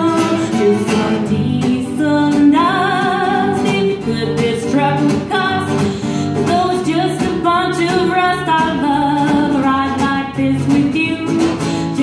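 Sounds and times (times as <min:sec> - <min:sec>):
strummed acoustic guitar: 0:00.0 - 0:12.0
woman singing country song: 0:00.0 - 0:12.0.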